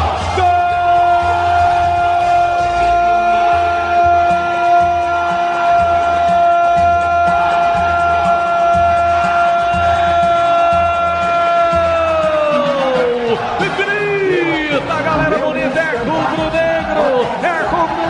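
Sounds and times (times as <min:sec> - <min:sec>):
commentator shouting goal: 0:00.1 - 0:18.0.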